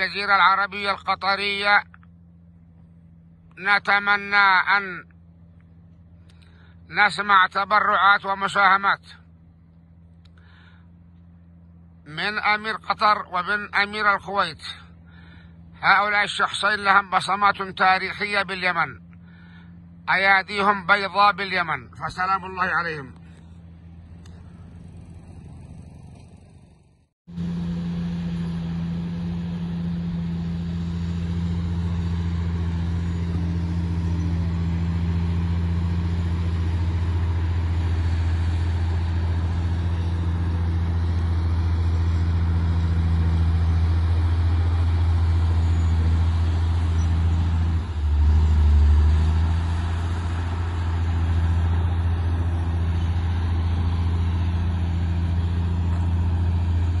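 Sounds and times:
heavy diesel engine humming: 0.0 - 57.0.

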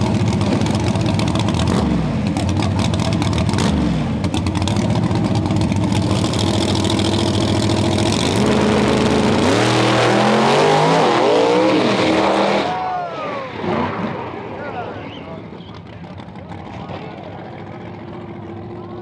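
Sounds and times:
race car engine revving: 0.0 - 12.8.

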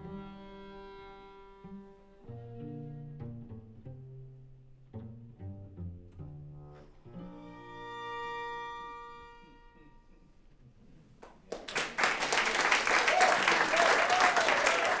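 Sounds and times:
string quartet bowed chord: 0.0 - 10.3
audience applause: 11.5 - 15.0.

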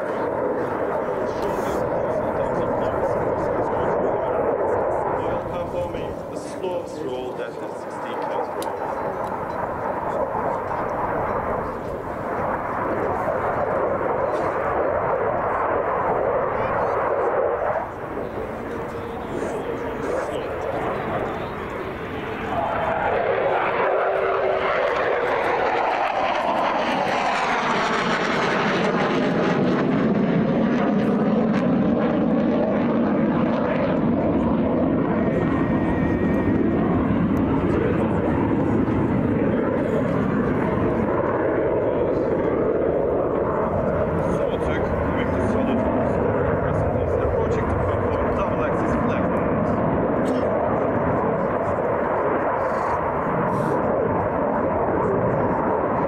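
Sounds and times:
jet engine roaring: 0.0 - 56.0
jet passing overhead whoosh: 0.0 - 56.0.

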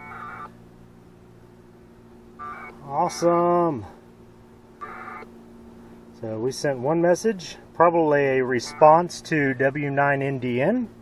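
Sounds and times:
buzzy packet radio data tones: 0.0 - 0.5, 2.4 - 3.9, 4.8 - 5.3, 7.8 - 10.1
low steady hum: 0.0 - 11.0.

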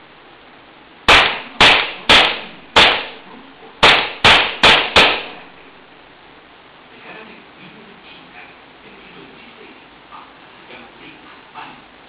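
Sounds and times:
pistol shots echoing: 1.1 - 3.2, 3.8 - 5.6.

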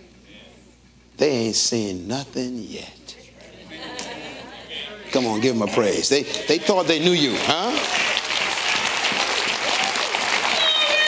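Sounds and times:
congregation applauding: 6.4 - 11.0.

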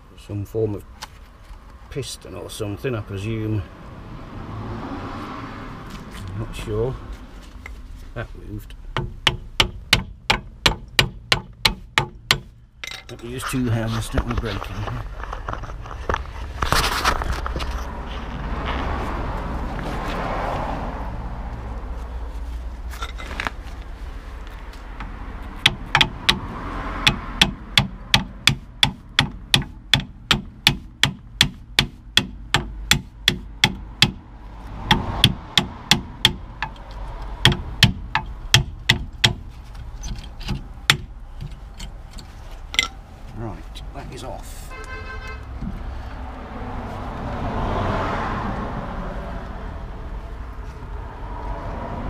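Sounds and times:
hammer on metal: 9.0 - 13.0, 25.6 - 34.2, 34.8 - 36.8, 37.4 - 39.4.

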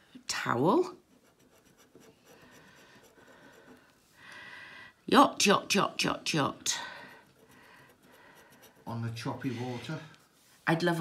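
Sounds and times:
coin scratching scratch card: 1.2 - 3.7.

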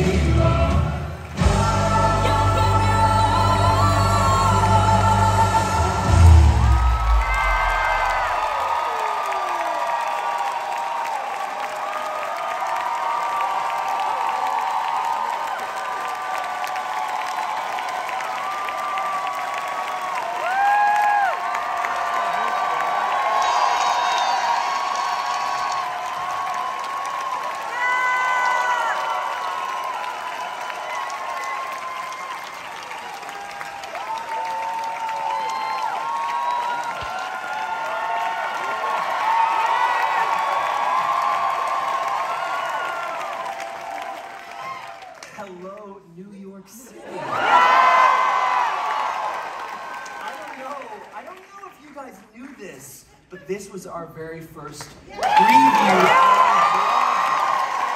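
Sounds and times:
audience cheering and applauding: 0.0 - 46.0, 47.0 - 52.2, 54.9 - 57.9
high whoops: 6.2 - 45.3, 55.1 - 57.9.

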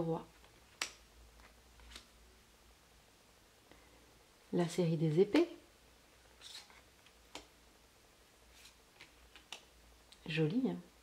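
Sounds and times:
cards sliding swishes: 6.3 - 7.5, 8.5 - 9.7.

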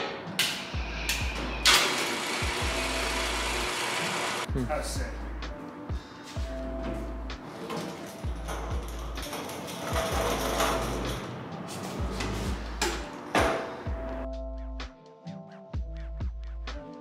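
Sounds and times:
background music with low beat: 0.0 - 3.8, 4.4 - 17.0
chain hoist whirring rattle: 7.6 - 11.3.

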